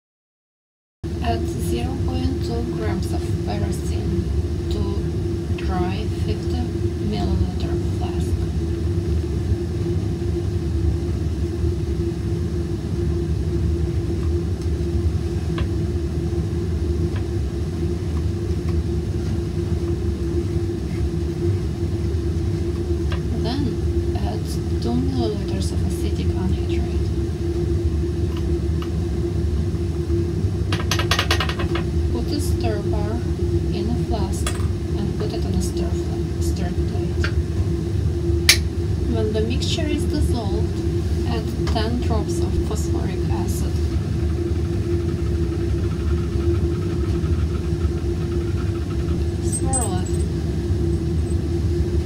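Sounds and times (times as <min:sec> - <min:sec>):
fume hood ventilation hum: 0:01.0 - 0:52.0.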